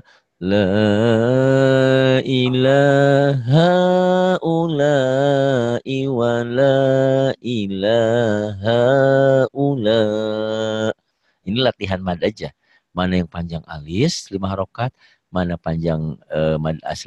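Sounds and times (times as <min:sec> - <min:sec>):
man chanting: 0:00.0 - 0:10.9, 0:11.5 - 0:17.0.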